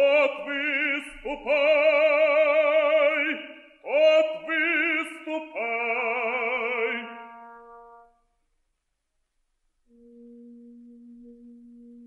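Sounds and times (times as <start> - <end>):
low steady held note: 9.9 - 12.0.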